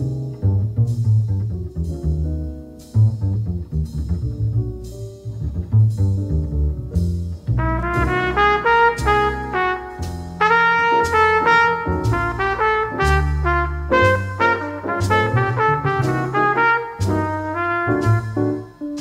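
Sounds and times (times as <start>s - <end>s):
bass notes: 0.0s - 19.0s
jazz combo playing: 0.0s - 19.0s
light percussion: 0.0s - 19.0s
horn melody: 7.6s - 19.0s.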